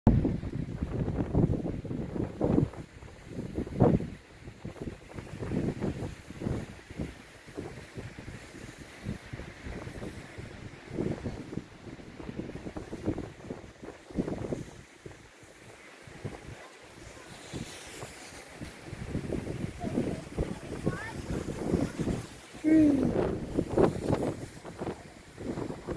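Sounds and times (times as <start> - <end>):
wind buffeting microphone: 0.1 - 25.9.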